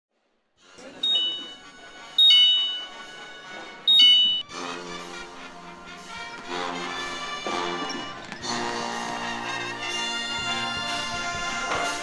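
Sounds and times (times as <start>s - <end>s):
music: 0.6s - 12.0s
two-note electronic chimes: 1.0s - 3.2s, 3.9s - 4.5s.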